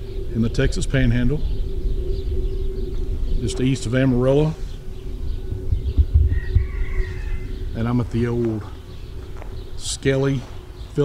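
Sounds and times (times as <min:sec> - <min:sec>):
wind rumble on microphone: 0:00.0 - 0:11.0.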